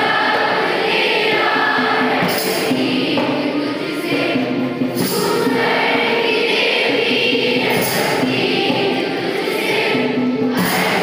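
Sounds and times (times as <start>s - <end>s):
children singing in unison: 0.0s - 11.0s.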